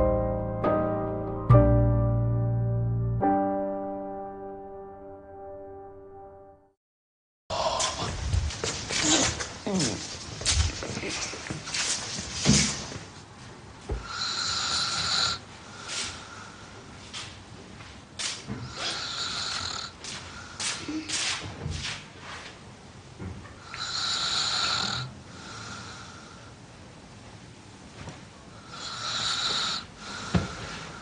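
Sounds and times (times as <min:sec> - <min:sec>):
man snoring: 0:14.0 - 0:15.4, 0:18.6 - 0:20.0, 0:23.6 - 0:26.4, 0:28.6 - 0:31.0.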